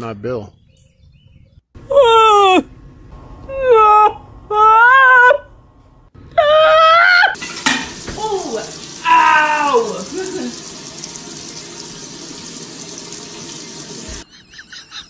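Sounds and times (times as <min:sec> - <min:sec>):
steady hiss: 0:07.4 - 0:14.2
person speaking: 0:08.2 - 0:10.6.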